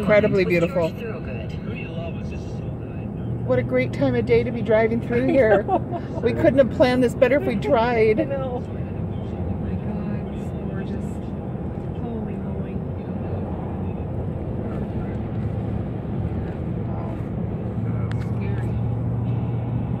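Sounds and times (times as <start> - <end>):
car interior road rumble: 0.0 - 20.0.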